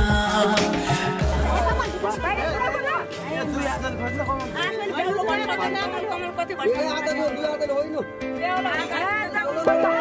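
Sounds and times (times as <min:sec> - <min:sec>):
people talking over one another: 0:00.1 - 0:10.0.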